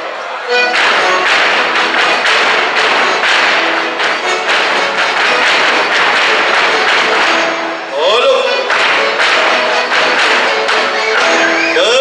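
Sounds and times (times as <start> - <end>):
folk dance music: 0.0 - 12.0
boots stamping on stage: 0.6 - 7.7, 8.6 - 11.8.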